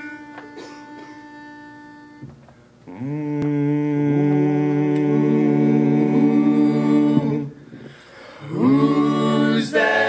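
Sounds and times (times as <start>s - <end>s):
pitch pipe note: 0.0s - 5.5s.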